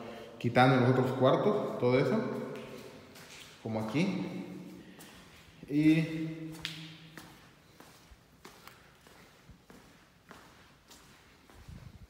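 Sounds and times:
footsteps on tiled floor: 1.6 - 5.7, 6.4 - 12.0.

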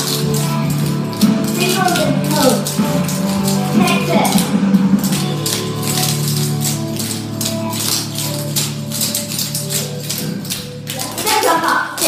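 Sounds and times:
country song playing: 0.0 - 12.0.

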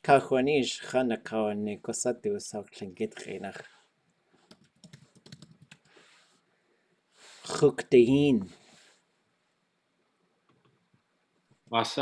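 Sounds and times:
typing on computer keyboard: 4.4 - 5.9.

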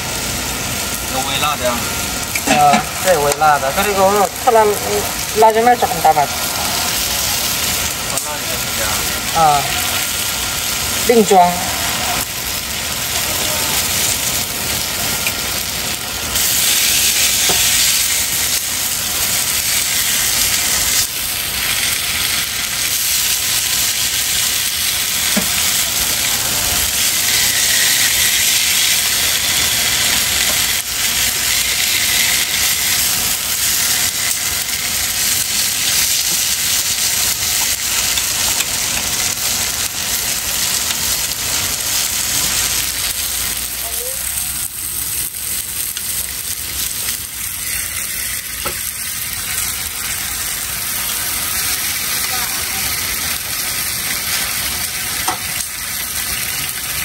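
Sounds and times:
food sizzling on a griddle: 0.0 - 57.0.

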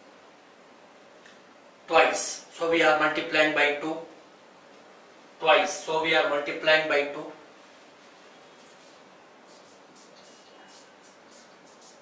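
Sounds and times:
marker squeaking on whiteboard: 8.4 - 12.0.

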